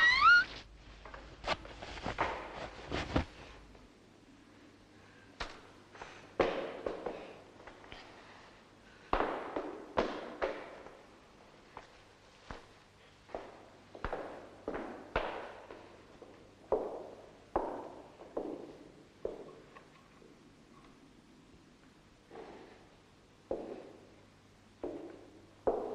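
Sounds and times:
sharp cracks echoing in a room: 5.4s - 8.0s, 8.9s - 20.0s.

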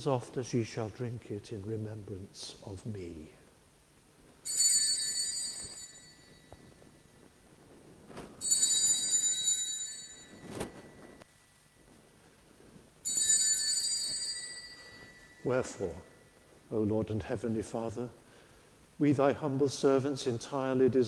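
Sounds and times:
small bell ringing: 4.4s - 7.2s, 8.4s - 11.2s, 13.0s - 16.4s.

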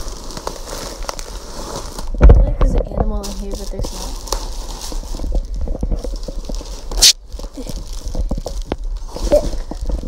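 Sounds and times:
bubble wrap crinkling: 0.0s - 10.0s
loud short rustling: 0.0s - 10.0s.

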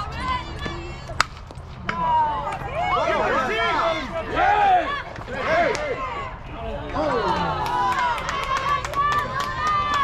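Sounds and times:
bat hitting ball crack: 1.2s - 2.0s
spectators shouting and cheering: 1.8s - 10.0s.

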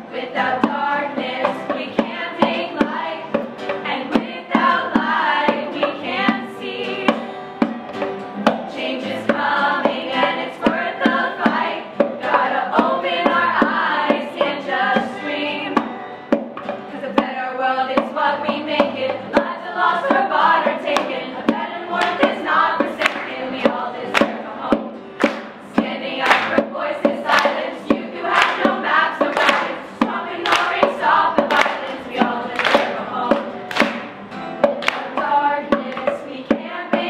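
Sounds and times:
girls singing in unison: 0.0s - 7.3s, 8.7s - 15.9s, 16.9s - 34.1s, 34.7s - 37.0s
sharp percussive hits: 20.1s - 37.0s.

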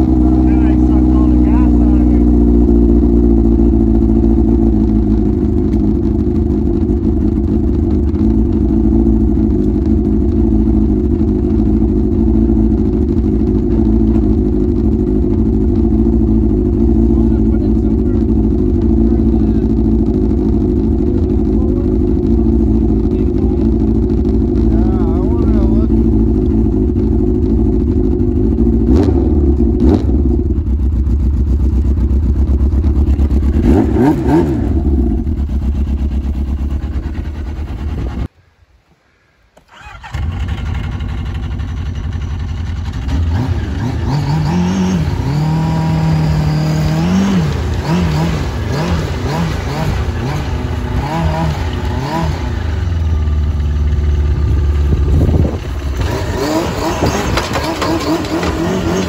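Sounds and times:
snowmobile engine idling: 0.0s - 38.3s, 39.6s - 59.0s.

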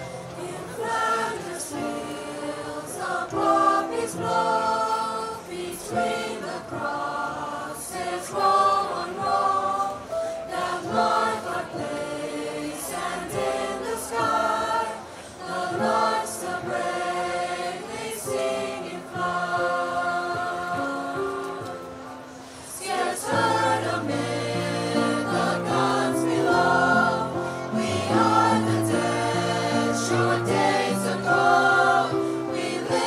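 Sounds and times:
mixed choir singing: 0.0s - 33.0s.

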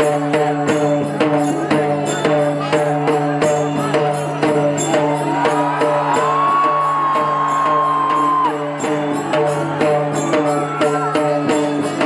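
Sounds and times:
drums and cymbals beating: 0.0s - 12.0s
long high held cry: 5.3s - 8.8s.

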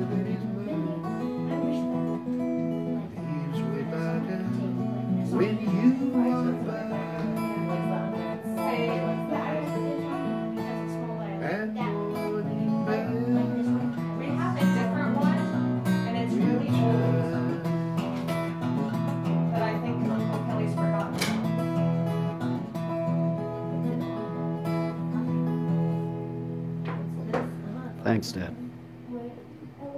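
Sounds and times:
acoustic guitar strumming: 0.0s - 29.9s.

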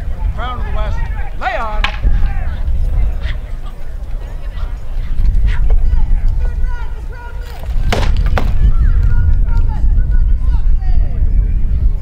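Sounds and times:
faint voices: 0.0s - 12.0s
wind buffeting microphone: 0.0s - 12.0s
knocks of blows on shields: 7.8s - 8.6s.

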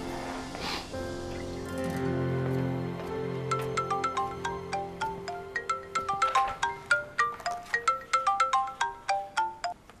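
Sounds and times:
mobile phone ringtone: 3.5s - 9.8s.

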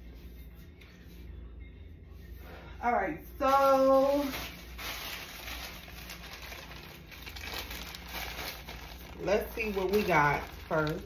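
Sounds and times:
plastic bag crinkling: 3.5s - 11.0s.

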